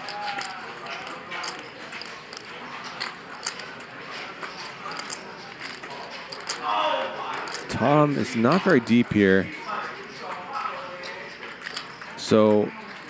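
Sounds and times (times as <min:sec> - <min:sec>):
poker chips clicking: 0:00.0 - 0:09.0, 0:11.0 - 0:12.5
murmur of voices: 0:00.0 - 0:13.0.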